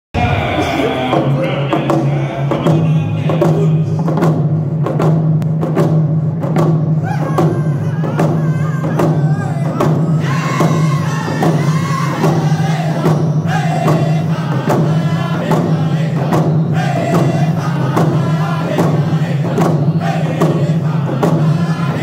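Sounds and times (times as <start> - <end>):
frame drums beating: 0.2 - 22.0
men singing: 7.0 - 22.0.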